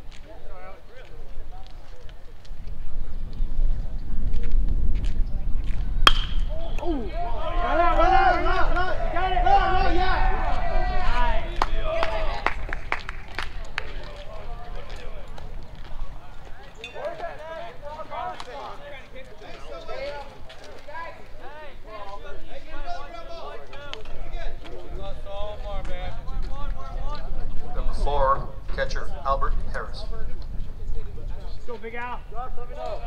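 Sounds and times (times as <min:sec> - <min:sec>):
chatter: 0:00.0 - 0:33.0
sharp claps: 0:06.1 - 0:06.5, 0:11.5 - 0:14.2
people shouting and calling out: 0:06.3 - 0:12.7.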